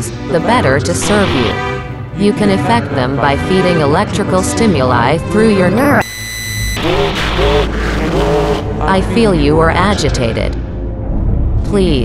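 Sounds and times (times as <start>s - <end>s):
high-pitched electronic tone: 5.8s - 7.0s
low rumble: 6.6s - 12.0s.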